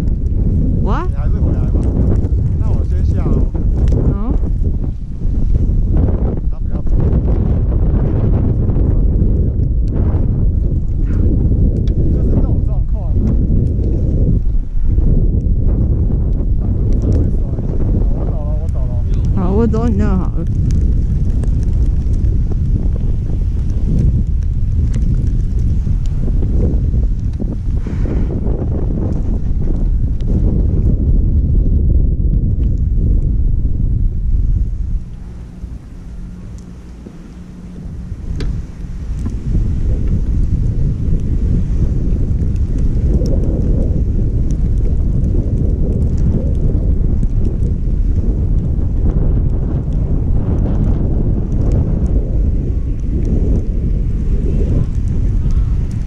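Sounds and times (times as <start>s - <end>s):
wind buffeting camera microphone: 0.0s - 56.0s.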